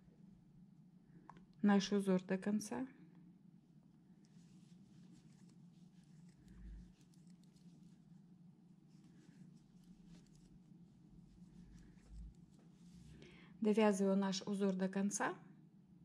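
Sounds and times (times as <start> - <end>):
crochet hook rustling yarn: 4.2 - 13.2.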